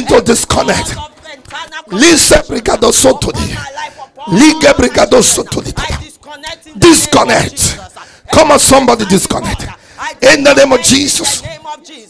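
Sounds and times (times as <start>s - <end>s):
man praying into a microphone: 0.0s - 12.0s
man shouting: 0.0s - 12.0s.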